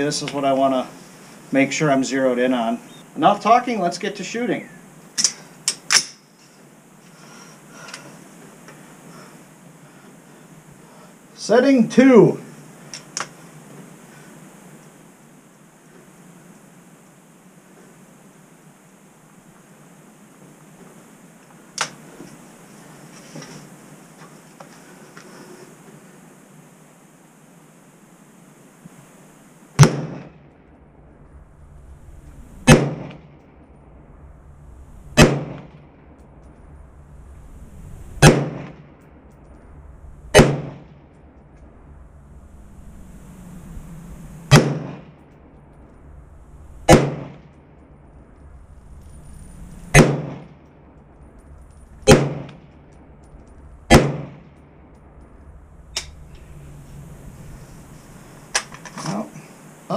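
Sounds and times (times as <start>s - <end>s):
rifle shots with ringing tail: 29.8s - 30.6s, 32.6s - 33.6s, 35.2s - 36.1s, 38.2s - 39.0s, 40.3s - 41.1s, 44.5s - 45.3s, 46.9s - 47.8s, 49.9s - 50.9s, 51.8s - 53.2s, 53.9s - 54.9s.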